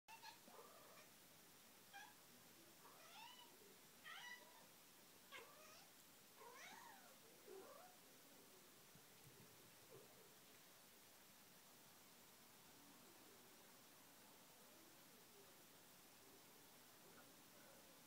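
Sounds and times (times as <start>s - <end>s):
cat meowing faintly: 0.1s - 1.1s, 1.9s - 2.2s, 2.8s - 4.7s, 5.3s - 8.0s.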